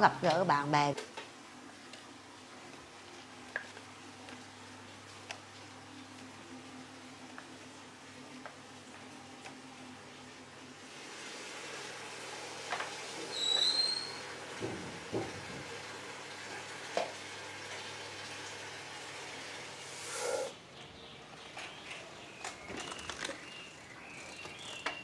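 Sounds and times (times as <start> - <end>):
scattered knocks: 14.6 - 15.6.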